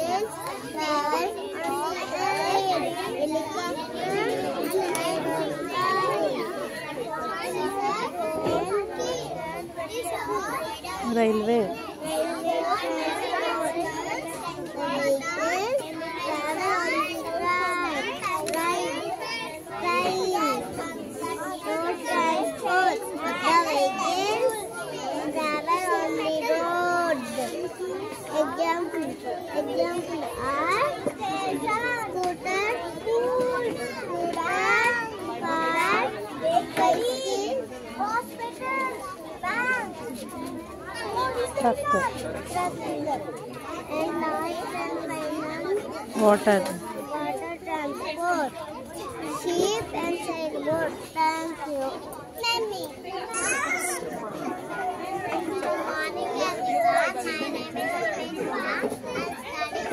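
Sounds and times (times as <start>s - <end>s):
children talking: 0.0s - 59.9s.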